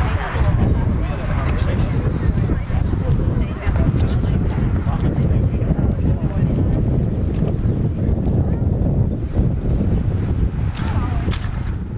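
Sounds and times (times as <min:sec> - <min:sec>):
faint voices of people: 0:00.0 - 0:11.9
wind buffeting microphone: 0:00.0 - 0:11.9.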